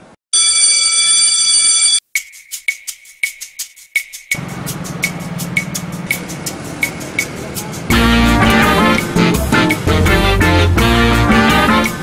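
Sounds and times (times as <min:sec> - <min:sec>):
electric bell ringing: 0:00.4 - 0:02.0.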